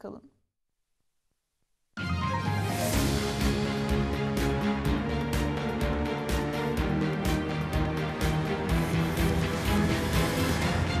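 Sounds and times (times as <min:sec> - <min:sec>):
news theme music with steady beat: 0:02.0 - 0:11.0.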